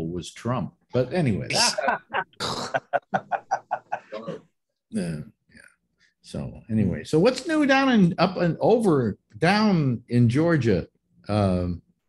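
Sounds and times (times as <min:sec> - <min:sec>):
person laughing: 0:01.5 - 0:04.4.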